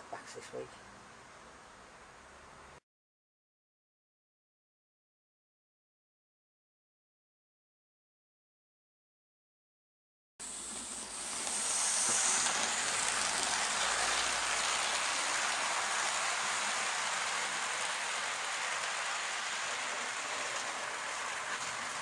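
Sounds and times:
model train rolling on track: 10.4 - 22.0.

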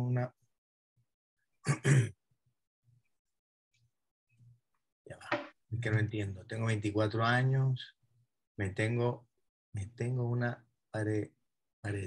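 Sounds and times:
woman clearing her throat: 1.6 - 2.2.

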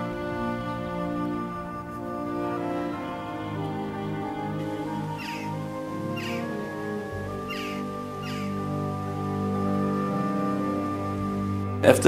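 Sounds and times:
slow music with held chords: 0.0 - 12.0
bird calls: 3.8 - 11.7.

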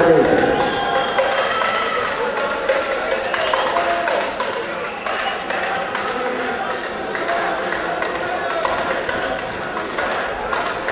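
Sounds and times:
crowd chatter: 0.0 - 10.9.

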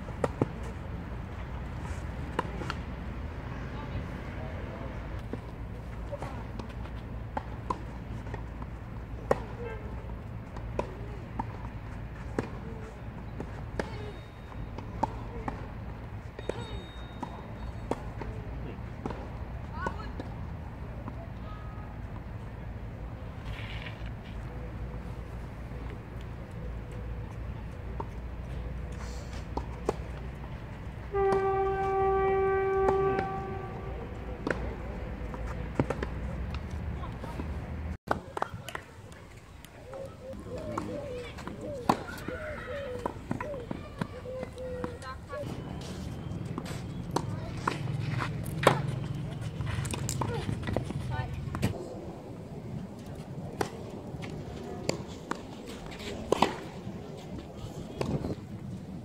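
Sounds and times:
tennis balls struck by rackets: 5.0 - 21.3, 32.7 - 51.8, 53.5 - 57.0
horn steady note: 31.1 - 34.3
tennis balls being struck: 39.8 - 45.6.

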